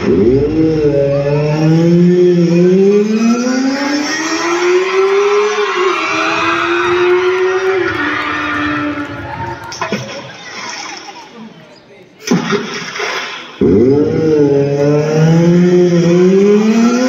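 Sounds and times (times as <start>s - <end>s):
engine sound effect rising in pitch: 0.0s - 9.6s, 13.6s - 17.0s.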